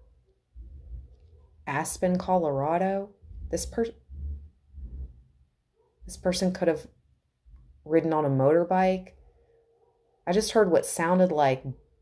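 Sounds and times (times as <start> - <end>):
low bass thumps: 0.6 - 1.2, 3.2 - 5.4.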